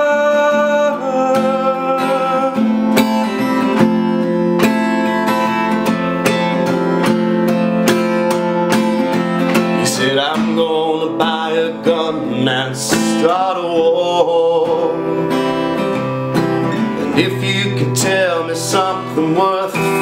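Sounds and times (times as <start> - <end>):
person singing: 0.0 - 5.6, 9.4 - 16.0, 16.6 - 20.0
acoustic guitar strumming: 0.0 - 20.0.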